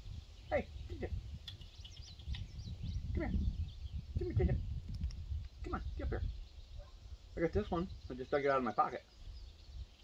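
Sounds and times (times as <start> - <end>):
small bird chirping: 0.0 - 10.0.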